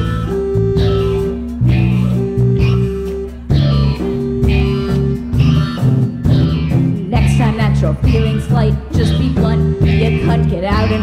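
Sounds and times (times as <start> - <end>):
drums: 0.0 - 11.0
electric bass: 0.0 - 11.0.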